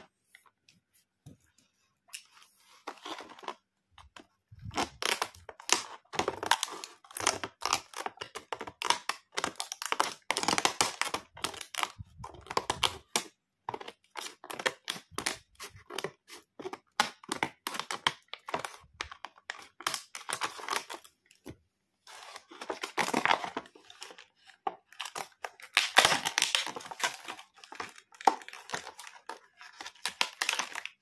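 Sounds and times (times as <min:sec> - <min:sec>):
plastic packaging crackling: 0:04.5 - 0:21.1, 0:22.1 - 0:31.0
scissors cutting plastic: 0:04.6 - 0:21.1, 0:22.4 - 0:31.0.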